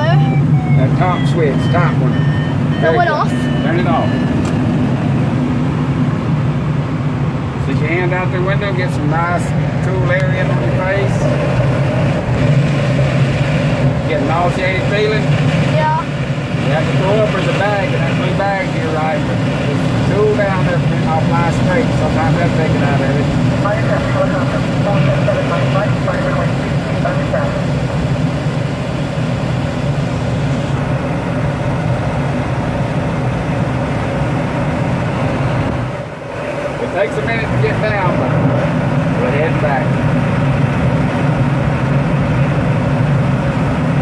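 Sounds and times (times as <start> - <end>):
low drone: 0.0 - 44.0
rushing airflow: 4.3 - 44.0.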